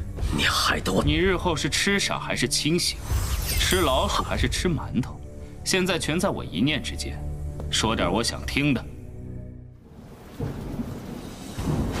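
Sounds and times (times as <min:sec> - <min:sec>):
thunder rumbling: 0:09.9 - 0:12.0.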